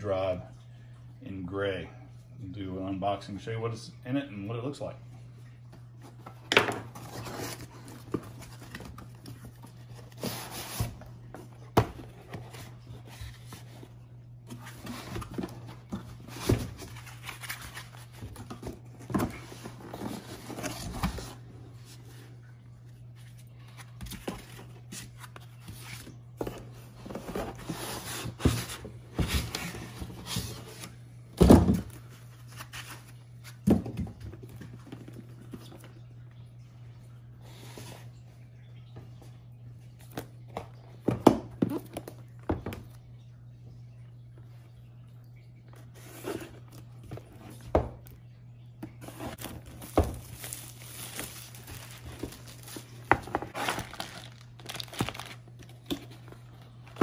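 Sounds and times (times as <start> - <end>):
cardboard boxes scraping and rustling: 6.9 - 22.0, 23.2 - 31.0, 49.0 - 56.4.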